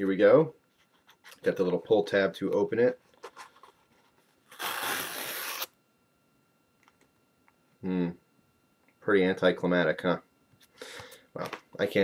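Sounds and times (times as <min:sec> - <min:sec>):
paper tear strip ripping: 0:04.5 - 0:05.7.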